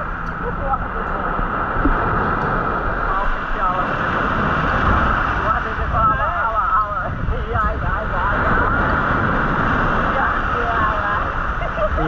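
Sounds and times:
surf breaking on beach: 0.0 - 12.0.

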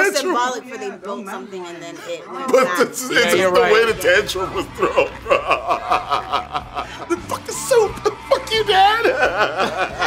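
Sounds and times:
stifled chuckling laughter: 4.5 - 7.3, 9.0 - 10.0.

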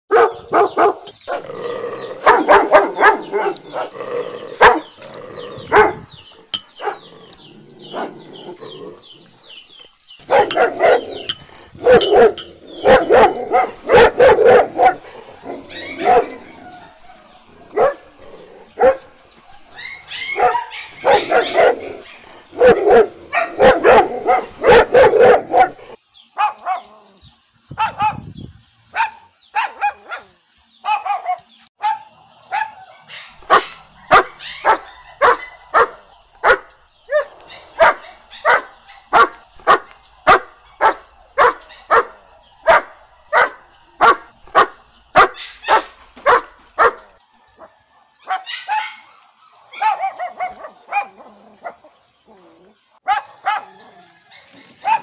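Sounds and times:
puppies barking and yipping: 0.1 - 55.0.

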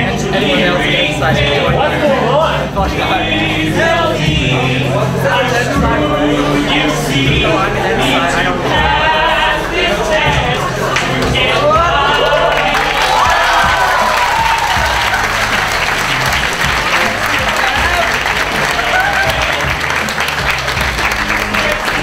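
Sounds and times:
group singing: 0.0 - 22.0
pop backing track: 0.0 - 22.0
crowd clapping: 9.7 - 22.0.

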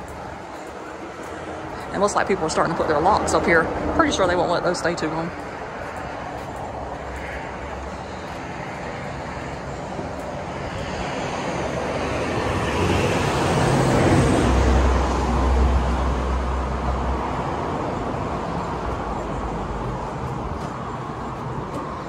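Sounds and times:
motor vehicle passing: 0.0 - 22.0.

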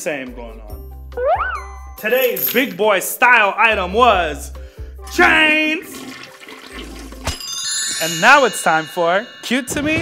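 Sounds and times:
bright chiming jingle: 1.6 - 3.1, 7.4 - 10.0
toilet flushing: 5.5 - 7.3.

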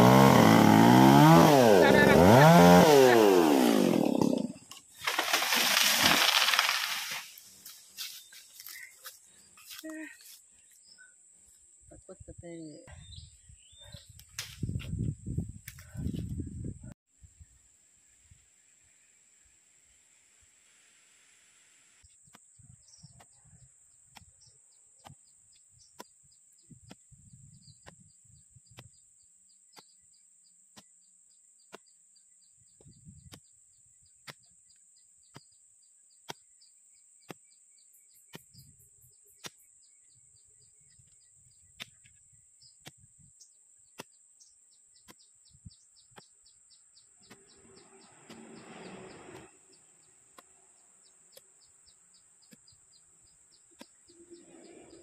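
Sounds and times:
bird chirps: 31.6 - 55.0
insect drone: 46.7 - 55.0.

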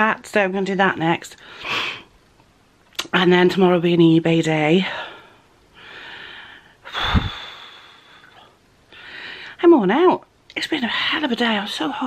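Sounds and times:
woman breathing hard: 5.0 - 9.6
breath puff hitting microphone: 6.9 - 7.6.

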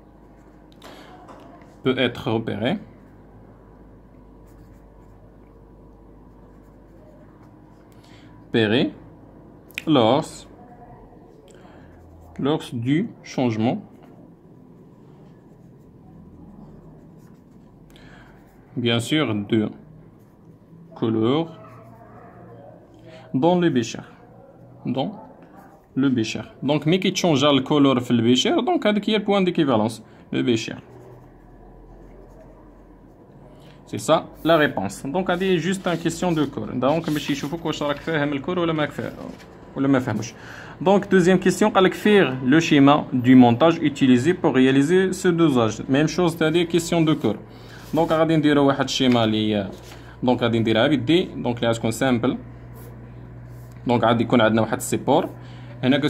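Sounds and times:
steady low hum: 0.0 - 56.0
pen scratching on paper: 0.1 - 0.7, 4.4 - 5.5, 6.3 - 7.8, 14.8 - 18.6, 20.2 - 20.5, 30.7 - 33.2, 34.3 - 40.4, 46.2 - 48.4.

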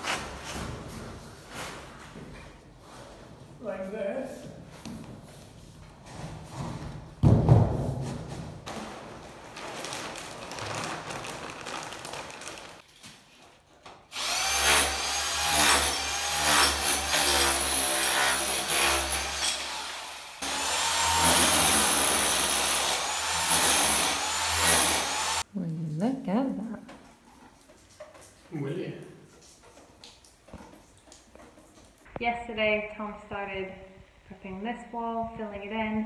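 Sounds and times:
thump: 7.2 - 8.6
rustling noise: 7.9 - 13.8
power tool chipping tiles: 14.1 - 25.4.

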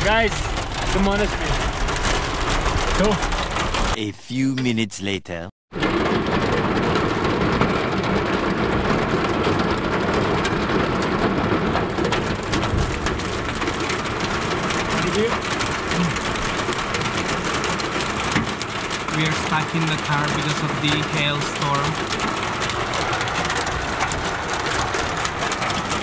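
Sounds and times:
hail and rain on car roof: 0.0 - 4.0, 5.8 - 26.0.

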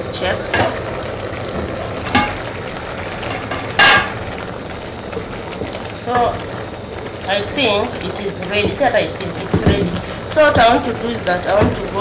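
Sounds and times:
boiling water hissing: 0.0 - 12.0
pot lid clanging: 3.3 - 4.2.

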